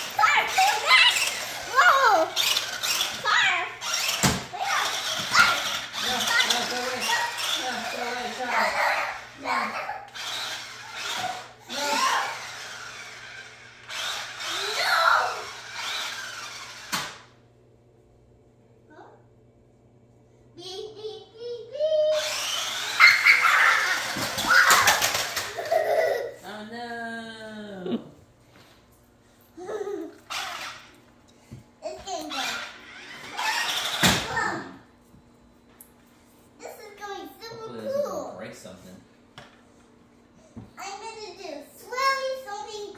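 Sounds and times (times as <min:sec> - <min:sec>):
child's excited voice: 0:00.0 - 0:02.4, 0:03.1 - 0:03.9, 0:04.5 - 0:10.1, 0:11.2 - 0:12.5, 0:14.4 - 0:15.6, 0:20.6 - 0:25.2, 0:31.8 - 0:32.8, 0:34.2 - 0:34.9, 0:36.6 - 0:38.4, 0:40.8 - 0:42.9
toy truck motor whirring: 0:00.0 - 0:17.3, 0:21.8 - 0:25.8, 0:30.2 - 0:31.0, 0:32.1 - 0:34.5.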